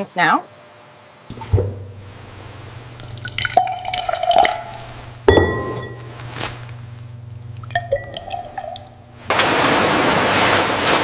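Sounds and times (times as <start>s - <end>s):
steady low hum: 0.0s - 9.4s
liquid dripping and splashing: 1.3s - 9.3s.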